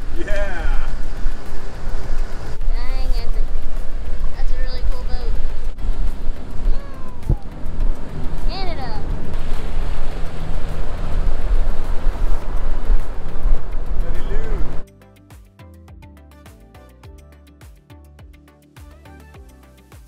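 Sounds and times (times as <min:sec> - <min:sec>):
boat engine: 0:00.0 - 0:14.8
water noise: 0:00.0 - 0:14.8
wind buffeting microphone: 0:00.0 - 0:14.8
soft background music: 0:00.0 - 0:20.0.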